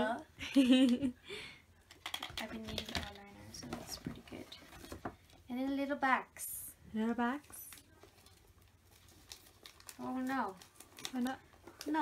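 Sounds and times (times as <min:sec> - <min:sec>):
gift bag clicks and taps: 0:01.9 - 0:03.2.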